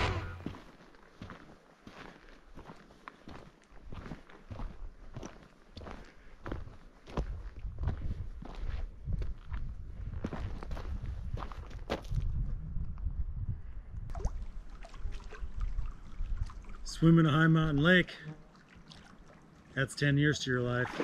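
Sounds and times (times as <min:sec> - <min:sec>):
low rumbling noise: 0:00.0 - 0:00.6
footsteps crunching on dirt: 0:00.0 - 0:12.3.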